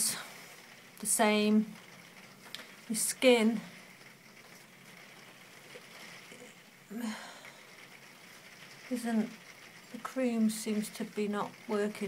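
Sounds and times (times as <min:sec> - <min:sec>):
faint steady hiss: 0:00.0 - 0:12.0
soft hesitant hum or breath: 0:05.8 - 0:08.0.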